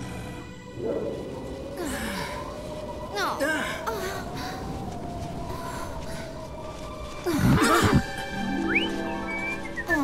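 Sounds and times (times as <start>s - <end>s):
soft background music: 0.0s - 3.9s, 4.6s - 10.0s.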